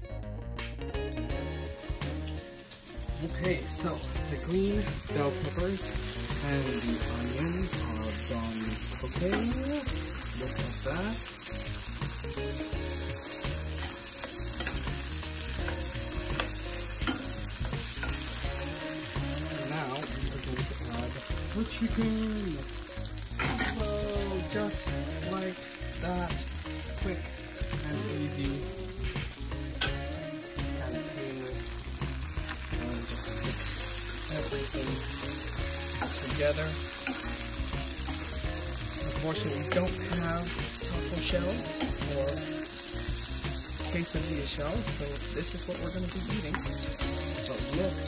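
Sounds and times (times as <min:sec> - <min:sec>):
vegetables sizzling in frying pan: 0:01.3 - 0:48.0.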